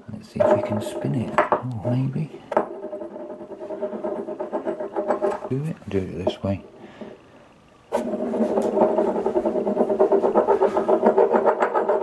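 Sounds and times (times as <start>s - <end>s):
coin spinning on wooden table: 0.4s - 6.8s, 7.9s - 12.0s.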